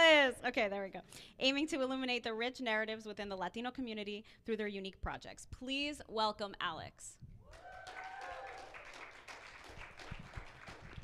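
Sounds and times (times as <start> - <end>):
audience applauding: 7.5 - 11.0.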